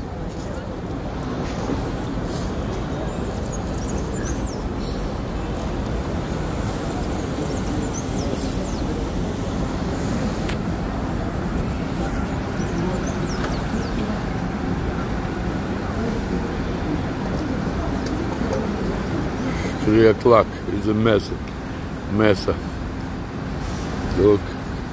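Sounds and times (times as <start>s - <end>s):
murmur of distant voices: 0.0s - 24.9s
traffic hum: 0.0s - 24.9s.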